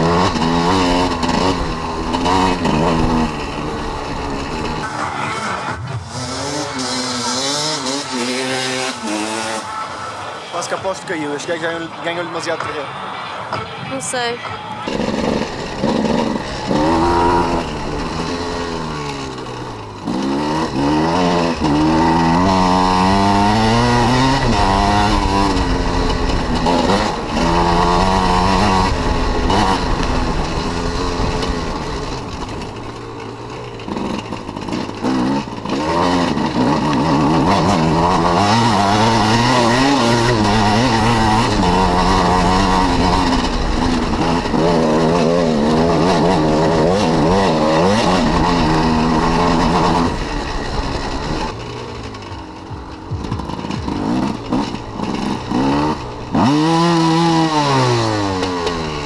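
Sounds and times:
dirt bike engine revving: 0.0s - 13.3s, 13.9s - 59.0s.

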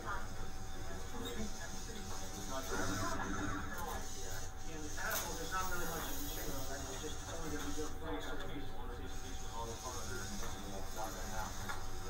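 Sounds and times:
chatter of young voices: 0.0s - 12.0s.

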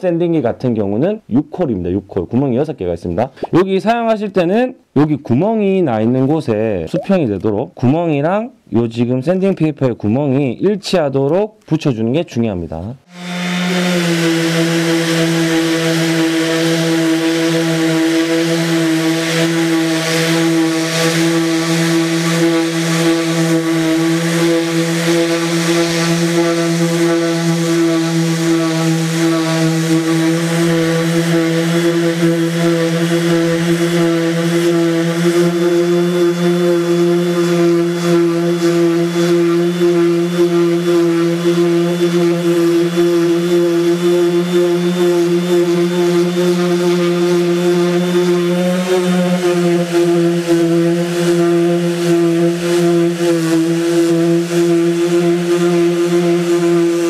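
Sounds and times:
orbital sanders droning: 13.1s - 57.0s.

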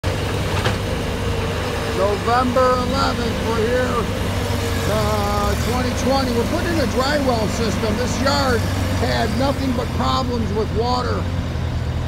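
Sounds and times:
diesel engine rumbling: 0.0s - 12.0s.

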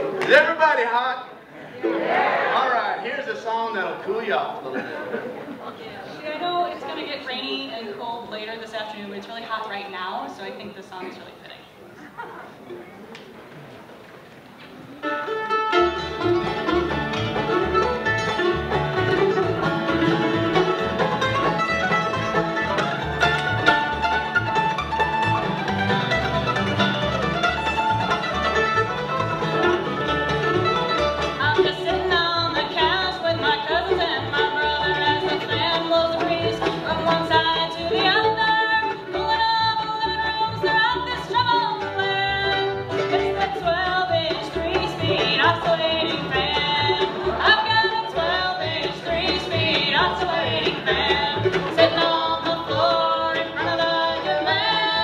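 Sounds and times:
bluegrass band playing: 0.0s - 55.0s.

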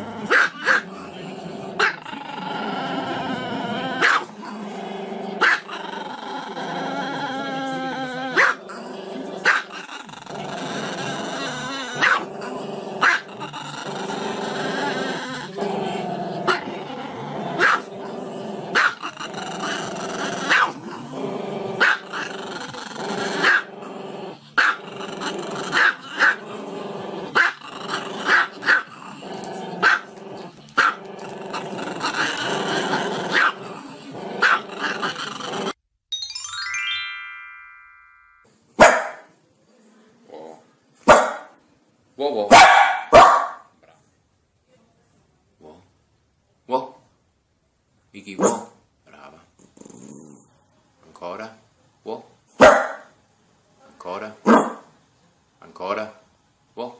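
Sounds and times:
dog growling: 0.0s - 35.8s, 48.5s - 50.6s
dog barking sharply: 38.8s - 39.3s, 41.1s - 41.5s, 42.5s - 43.7s, 48.4s - 48.8s, 52.6s - 53.1s, 54.5s - 54.8s.

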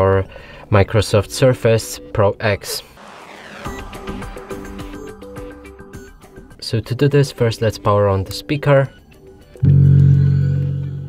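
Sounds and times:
speaker power-on tone: 3.0s - 6.2s.

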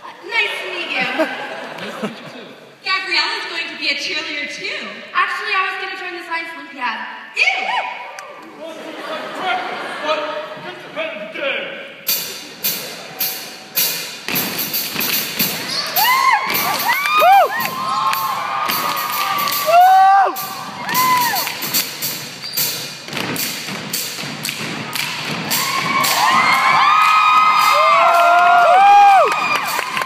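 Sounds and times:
rhythmic dance thumps: 12.1s - 28.6s
audience cheering and screaming: 15.6s - 21.7s, 24.8s - 30.0s.

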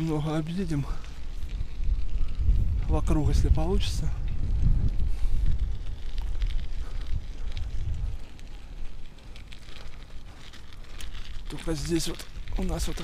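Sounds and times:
tyres crackling on wet road: 0.0s - 13.0s
wind rumbling on microphone: 0.0s - 13.0s.

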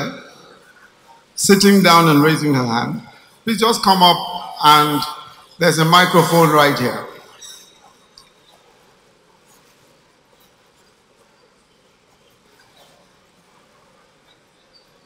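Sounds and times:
amplified voice reverberating: 0.0s - 0.7s, 1.4s - 7.4s.

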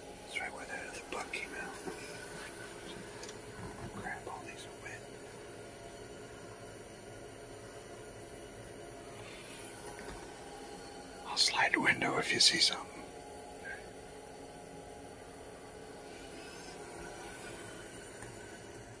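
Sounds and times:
faint whispering: 0.3s - 5.1s, 11.2s - 13.9s.

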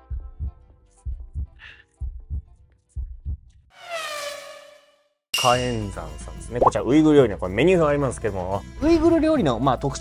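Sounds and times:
heartbeat thumps: 0.0s - 3.5s
faint background music: 5.4s - 10.0s.

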